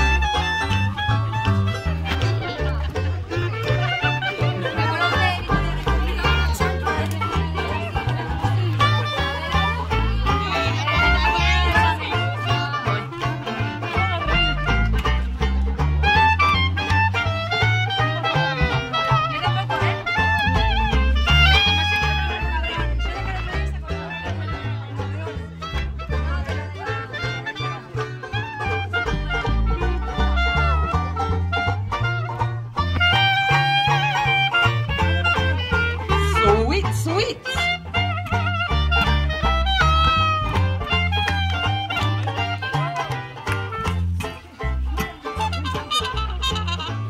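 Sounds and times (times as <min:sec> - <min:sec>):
clarinet melody: 0:00.0 - 0:47.0
strummed banjo: 0:00.0 - 0:47.0
upright bass plucking: 0:00.0 - 0:47.0.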